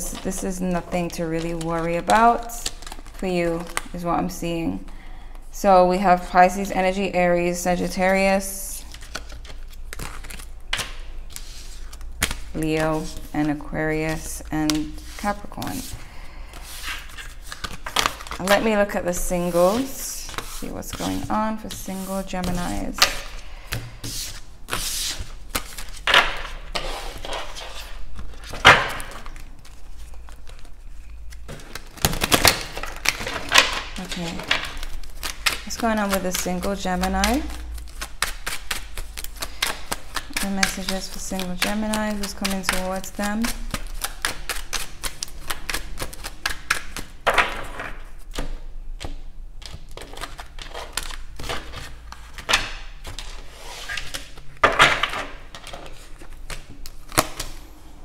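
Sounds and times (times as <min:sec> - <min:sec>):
cards being shuffled: 0:00.1 - 0:04.0, 0:08.8 - 0:48.6.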